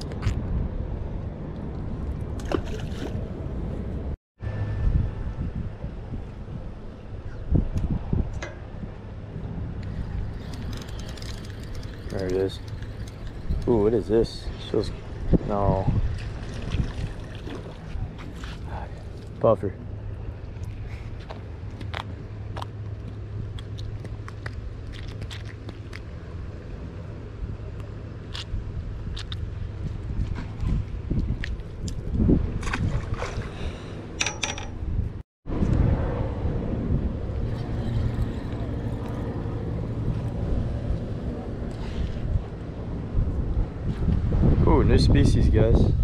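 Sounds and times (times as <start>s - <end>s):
wind rumbling on microphone: 0.0s - 46.0s.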